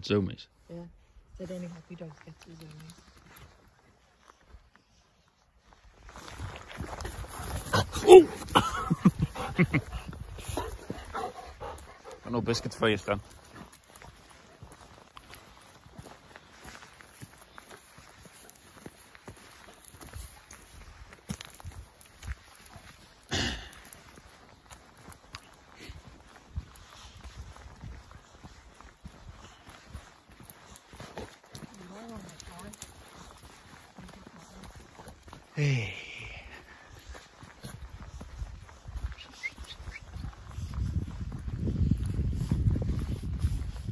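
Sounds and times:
footsteps crunching on gravel: 0:01.4 - 0:43.9.

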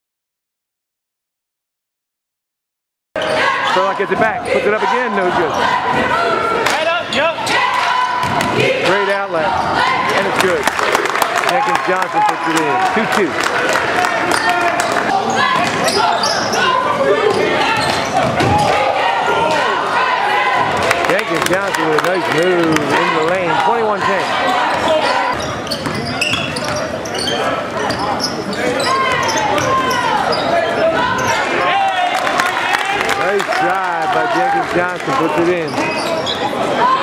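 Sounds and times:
echoing voices: 0:03.2 - 0:37.0.

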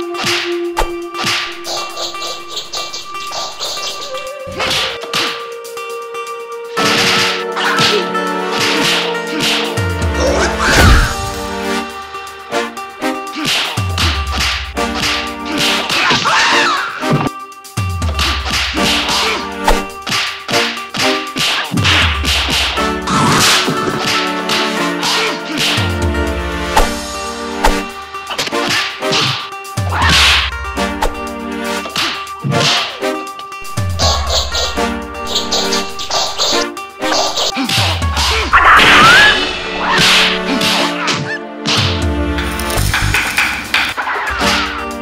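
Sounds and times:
background music with held notes: 0:00.0 - 0:45.0
music with deep pulsing bass: 0:01.0 - 0:15.9, 0:21.9 - 0:28.3
punch and slap effects: 0:27.6 - 0:30.4, 0:32.0 - 0:32.9, 0:39.9 - 0:42.0.

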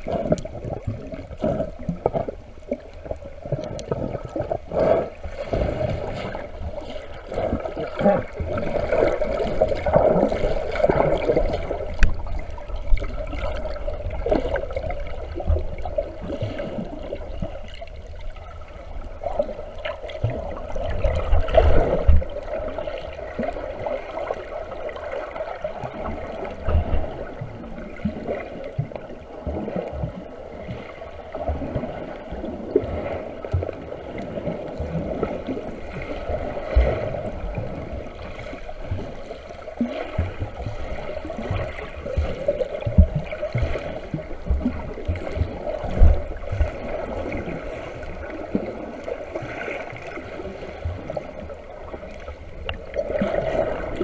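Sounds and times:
muffled underwater water sloshing: 0:00.0 - 0:54.0.

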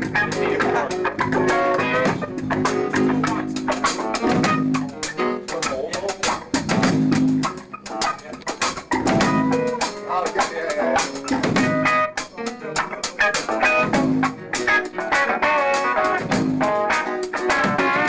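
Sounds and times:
drum kit playing: 0:00.0 - 0:18.0
electric guitar: 0:00.0 - 0:18.0.

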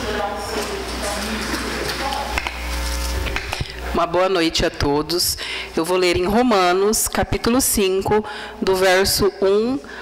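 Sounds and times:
faint murmured voices: 0:00.0 - 0:03.9.

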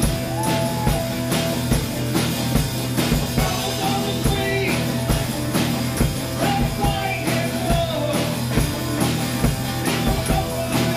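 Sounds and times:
acoustic guitar: 0:00.0 - 0:10.9
electric bass: 0:00.0 - 0:10.9
steady drum beat: 0:00.0 - 0:10.9.

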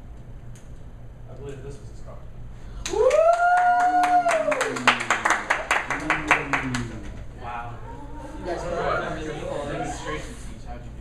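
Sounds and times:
audience clapping: 0:02.8 - 0:07.2.

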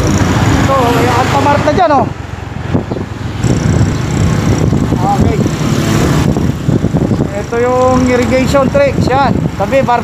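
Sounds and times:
vehicle engine and road rumble: 0:00.0 - 0:10.0
wind rushing over microphone: 0:00.0 - 0:10.0.

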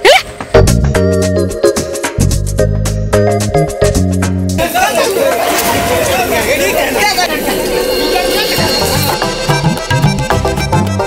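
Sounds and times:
busy chatter of voices: 0:04.6 - 0:09.5.

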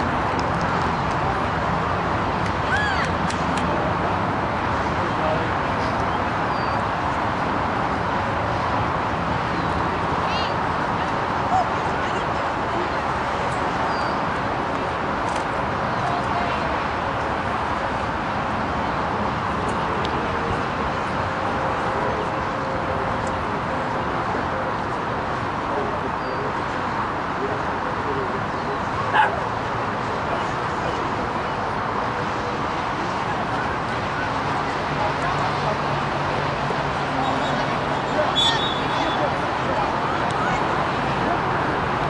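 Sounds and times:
open-air noise: 0:00.0 - 0:42.0
outdoor background noise: 0:00.0 - 0:42.0
dog yelp: 0:29.1 - 0:29.4.

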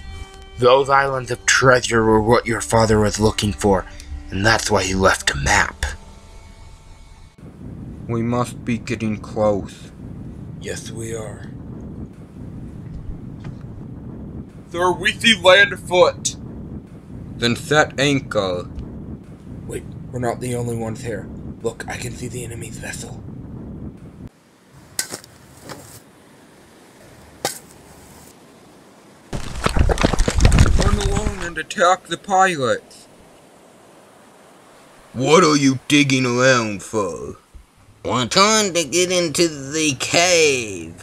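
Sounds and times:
faint steady hiss: 0:00.0 - 0:23.2, 0:23.9 - 0:41.0
low wind-like rumble: 0:00.0 - 0:41.0.

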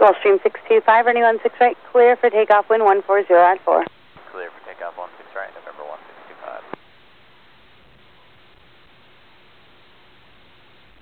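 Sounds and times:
radio static hiss: 0:00.0 - 0:11.0
radio transmission click: 0:03.4 - 0:06.8
pilot speaking over radio: 0:03.5 - 0:06.8.

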